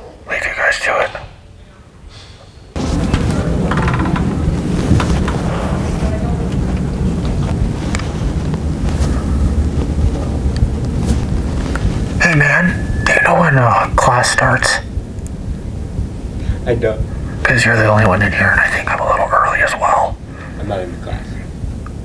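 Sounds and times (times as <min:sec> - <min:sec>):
low rumbling noise: 0:00.0 - 0:22.0
person speaking: 0:00.3 - 0:01.4, 0:12.1 - 0:15.0, 0:16.6 - 0:21.4.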